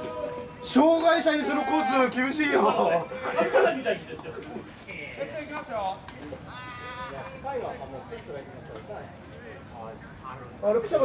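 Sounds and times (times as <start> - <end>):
players shouting calls: 0.0 - 4.1, 5.0 - 8.1.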